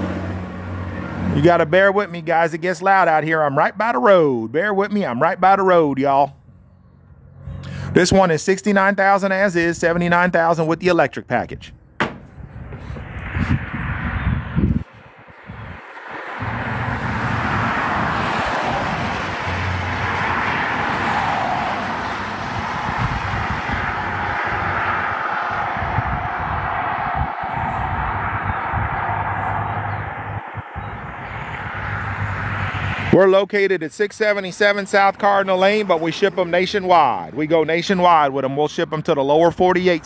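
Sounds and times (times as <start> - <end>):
road traffic rush: 0.0 - 40.0
wind on microphone: 11.6 - 33.1.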